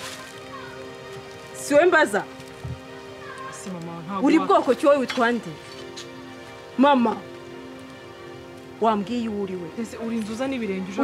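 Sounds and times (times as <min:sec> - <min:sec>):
soft sustained music chords: 0:00.0 - 0:11.0.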